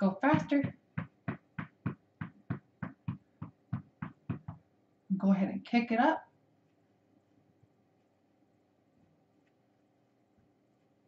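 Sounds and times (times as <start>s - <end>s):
feet stamping on rug: 0.0s - 4.7s.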